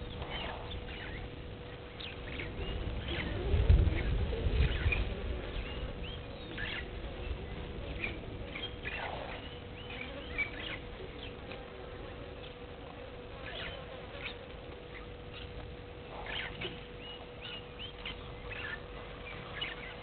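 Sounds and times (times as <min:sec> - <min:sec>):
bird chirps and calls: 0:00.0 - 0:12.7, 0:13.3 - 0:20.0
low buzzing hum: 0:00.0 - 0:20.0.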